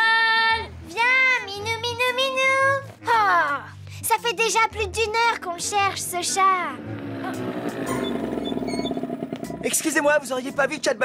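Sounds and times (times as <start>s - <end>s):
girl's voice: 0.0s - 7.5s
motor scooter engine buzzing: 6.2s - 9.9s.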